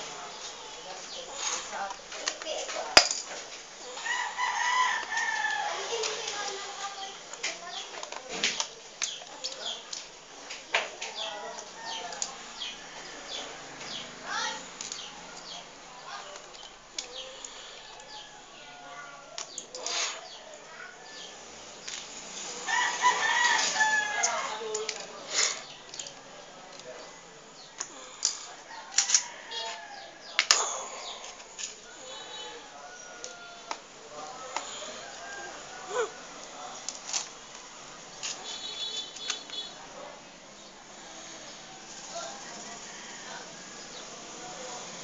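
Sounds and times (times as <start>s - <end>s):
rooster crowing: 3.8s - 6.1s, 22.6s - 24.9s, 28.7s - 30.3s, 31.9s - 36.6s, 41.7s - 44.7s.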